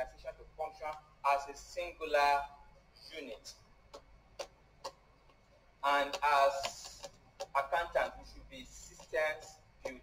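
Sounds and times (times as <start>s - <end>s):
man talking: 0.0s - 3.6s, 5.8s - 10.0s.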